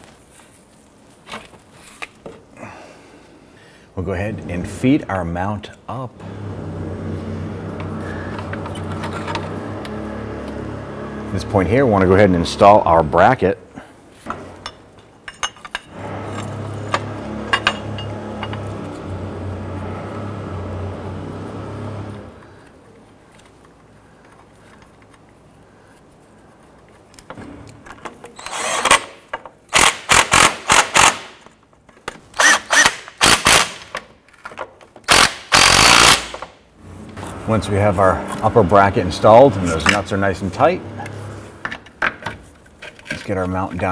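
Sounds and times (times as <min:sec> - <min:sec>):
power tool humming: 0:06.2 - 0:12.4, 0:16.0 - 0:22.4, 0:35.1 - 0:36.2
power tool short loud bursts: 0:35.1 - 0:36.3.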